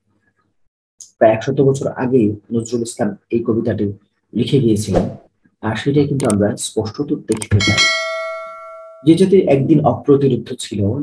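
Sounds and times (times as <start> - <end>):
bell-like chime: 7.6 - 9.2.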